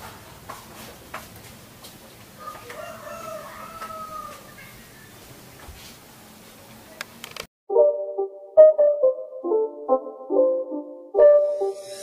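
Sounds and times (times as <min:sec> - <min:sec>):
rooster crowing: 0:02.4 - 0:04.8.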